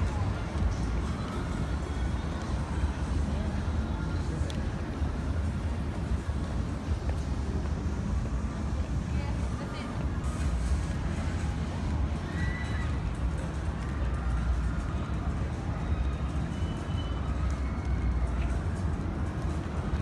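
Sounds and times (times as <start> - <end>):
faint indistinct voices: 0.0 - 20.0
outdoor background noise: 0.0 - 20.0.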